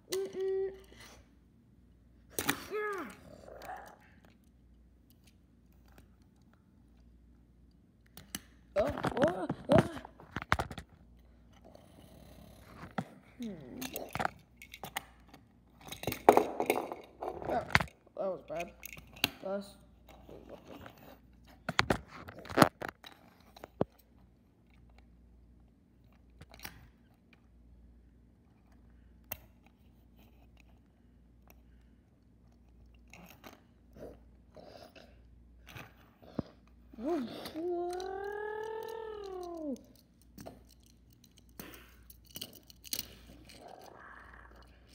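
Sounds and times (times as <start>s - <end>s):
toy cars clacking and scraping: 12.6s - 19.4s, 35.7s - 44.9s.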